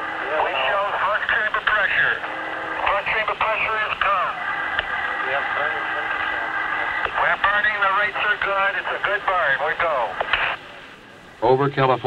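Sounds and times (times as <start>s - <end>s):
tinny radio voices chatter: 0.2s - 10.9s.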